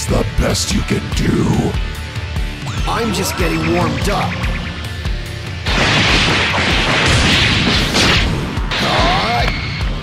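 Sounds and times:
action music with low beat: 1.1s - 7.8s.

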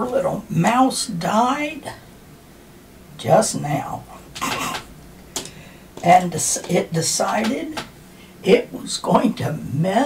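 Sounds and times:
breathy exhale: 5.5s - 5.9s.

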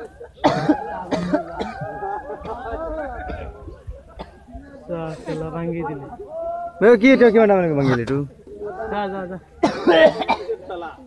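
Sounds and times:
people shouting and calling out: 0.0s - 11.0s
harsh cough-like shout: 0.4s - 2.0s, 9.6s - 10.7s.

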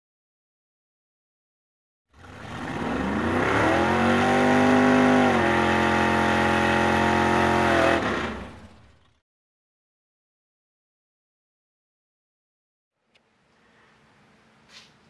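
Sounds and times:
engine revving up: 2.1s - 9.2s.

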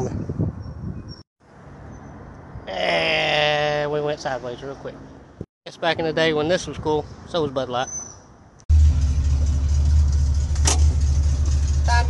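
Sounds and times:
car engine rumbling from cabin: 8.7s - 12.0s.

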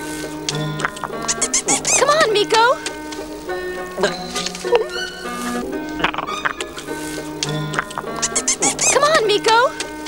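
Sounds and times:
background music: 0.0s - 10.0s
cartoon animal squeaky chattering: 0.9s - 2.2s, 7.6s - 9.2s.

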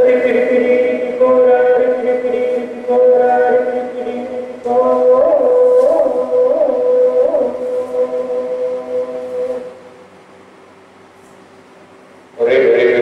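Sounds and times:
chanted singing long held note: 0.0s - 10.0s, 12.4s - 13.0s.

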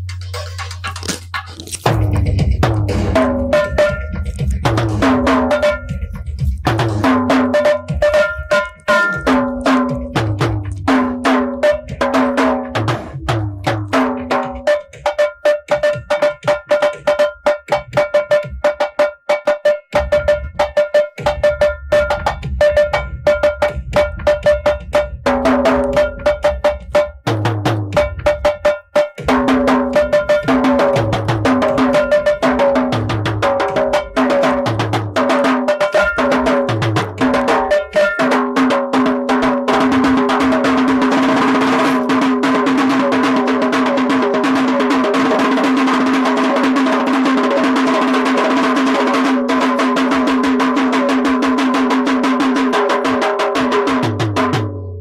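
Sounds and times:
deeper drum hits: 0.0s - 14.8s
small tuned drums played fast: 0.0s - 55.0s.

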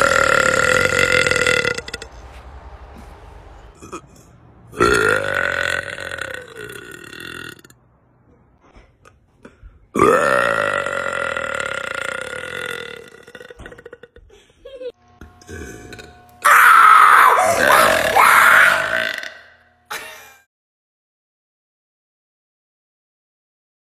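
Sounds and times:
woman burping: 0.0s - 2.0s, 3.8s - 7.8s, 9.9s - 14.3s, 15.4s - 16.2s, 17.6s - 20.4s.

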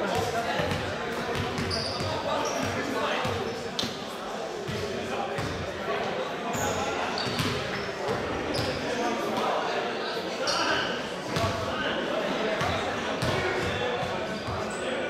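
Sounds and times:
echoing chatter: 0.0s - 15.0s.

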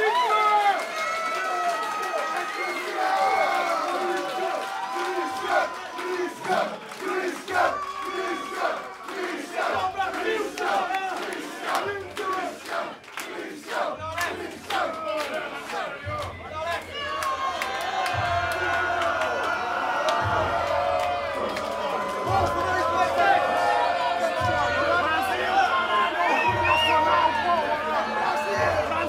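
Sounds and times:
concert crowd shouting and cheering: 0.0s - 29.0s.

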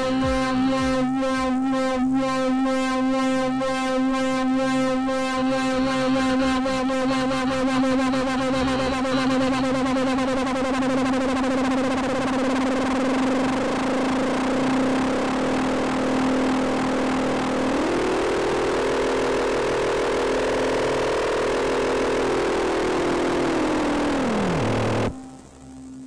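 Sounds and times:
gliding synthesizer tone: 0.0s - 26.0s
synthesizer buzzing drone: 0.0s - 26.0s.

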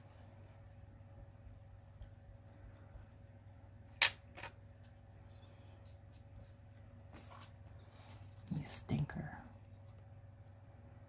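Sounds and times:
paper rustle: 6.1s - 8.4s.

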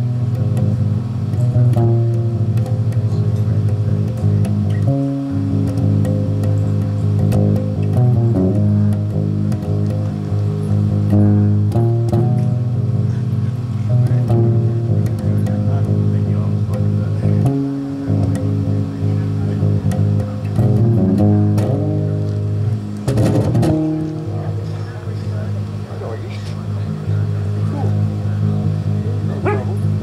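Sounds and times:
electric bass low notes: 0.0s - 30.0s.

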